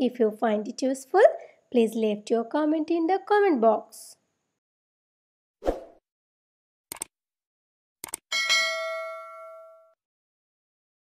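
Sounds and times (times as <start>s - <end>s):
notification bell ding: 8.3s - 10.0s.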